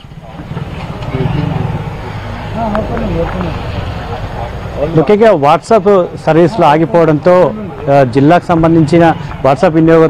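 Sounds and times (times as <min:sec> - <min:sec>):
vehicle engine running: 0:00.0 - 0:08.1
faint voices: 0:00.0 - 0:10.0.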